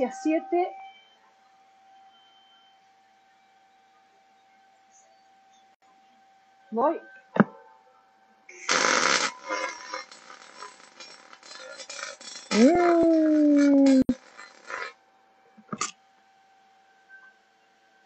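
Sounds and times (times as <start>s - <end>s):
welding arc crackling: 8.5s - 15.0s.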